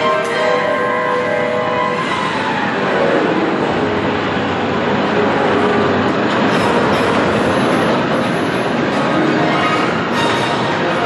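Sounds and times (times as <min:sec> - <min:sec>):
roller coaster wheels clattering on rail: 0:00.0 - 0:11.0.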